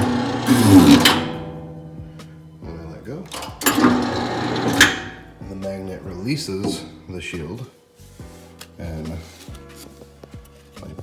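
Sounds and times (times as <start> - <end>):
electric paper cutter running: 0.0 - 1.3, 3.7 - 5.2.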